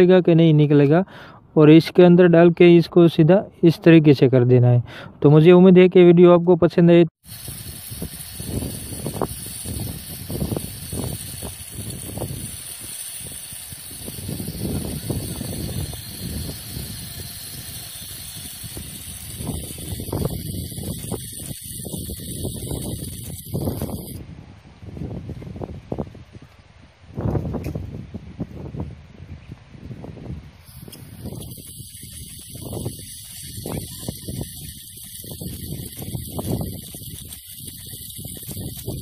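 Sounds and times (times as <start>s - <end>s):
liquid gas hissing from canister: 7.2s - 24.2s, 30.6s - 39.0s.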